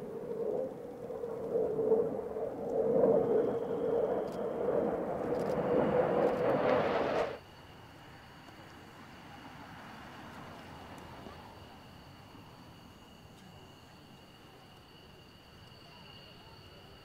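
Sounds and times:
jet engine roar: 0:00.0 - 0:13.0.

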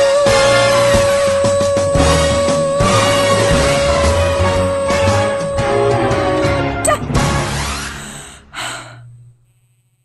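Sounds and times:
backing music: 0:00.0 - 0:07.8
breathy gasp: 0:07.9 - 0:09.8.

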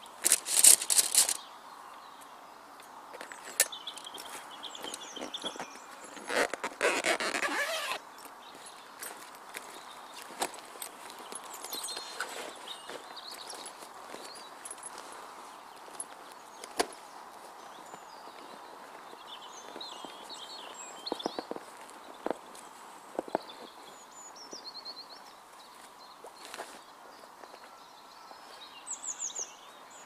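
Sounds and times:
canvas rustling and scraping: 0:00.0 - 0:01.5, 0:04.2 - 0:24.2.

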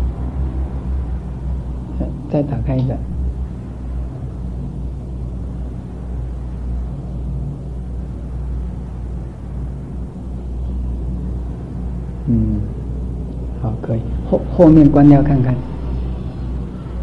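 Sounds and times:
electrical hum: 0:00.0 - 0:17.0
low rumble: 0:00.0 - 0:17.0.

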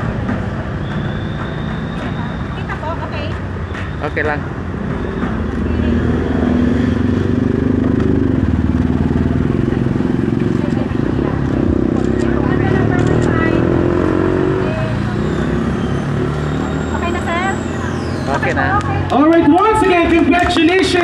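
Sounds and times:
engine running: 0:00.0 - 0:21.0
scattered voices: 0:07.6 - 0:21.0.

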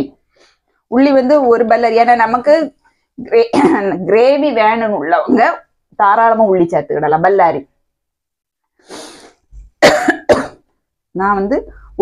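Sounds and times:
person coughing: 0:09.8 - 0:10.7.

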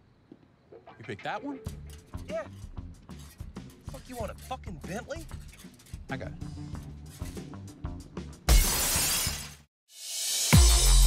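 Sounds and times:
glass shattering: 0:08.5 - 0:09.7.

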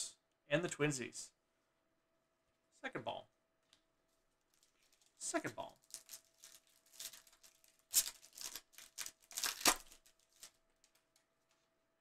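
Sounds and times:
card pack wrapper tearing: 0:05.8 - 0:11.0.

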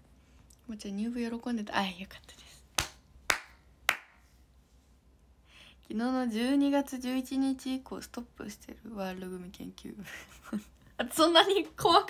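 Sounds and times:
hands clapping: 0:02.8 - 0:04.2.

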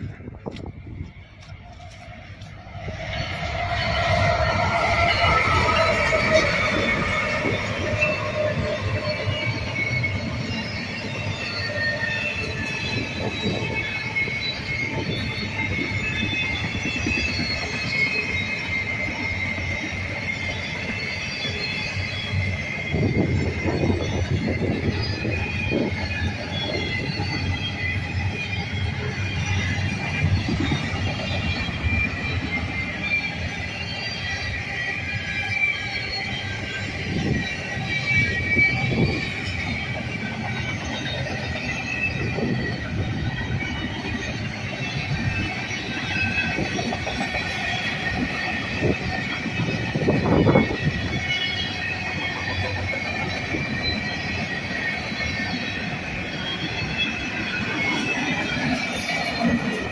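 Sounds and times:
high wheel squeal: 0:00.0 - 0:59.9
train wheels rumbling on rail: 0:00.0 - 0:59.9.

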